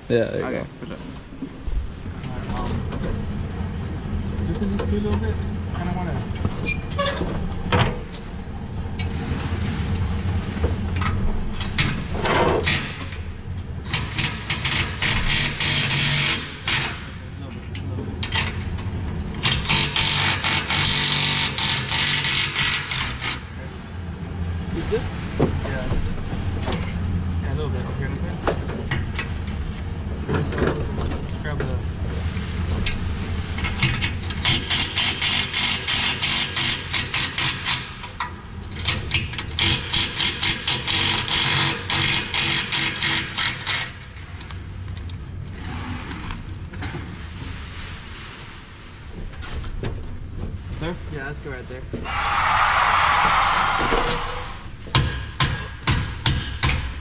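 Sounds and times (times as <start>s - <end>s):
steady low hum: 0.0s - 13.9s.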